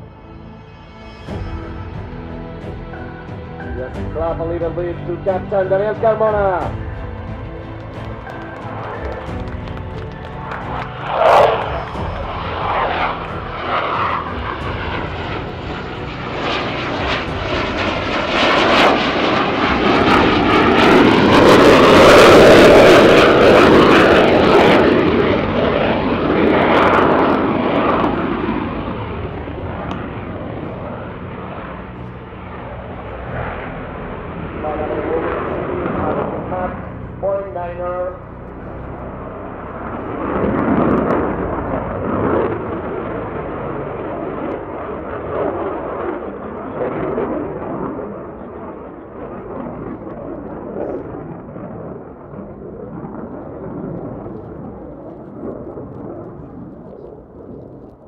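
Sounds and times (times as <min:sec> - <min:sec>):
jet engines roaring: 0:00.0 - 0:58.0.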